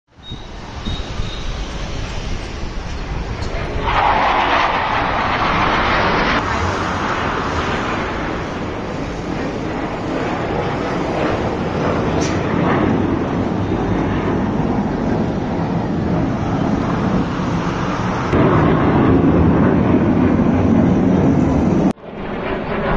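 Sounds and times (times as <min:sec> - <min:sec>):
fighter jets roaring overhead: 0:00.2 - 0:22.9.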